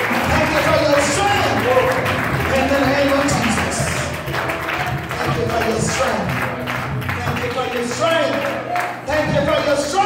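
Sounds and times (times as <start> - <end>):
church praise music: 0.0 - 10.0.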